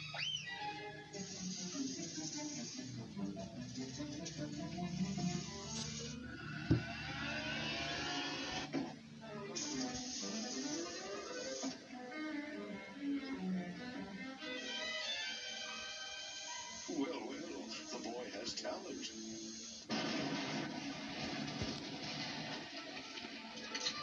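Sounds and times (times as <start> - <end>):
cartoon music with sound effects: 0.0 - 8.6.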